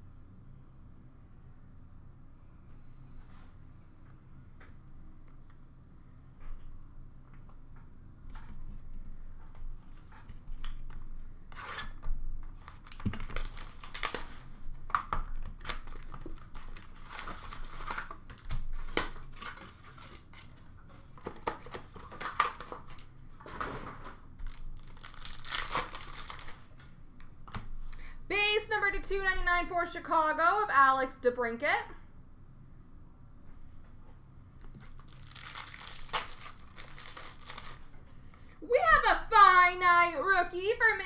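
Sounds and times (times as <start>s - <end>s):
card wrappers tearing and crinkling: 12.6s - 23.1s, 24.4s - 26.9s, 34.8s - 38.0s.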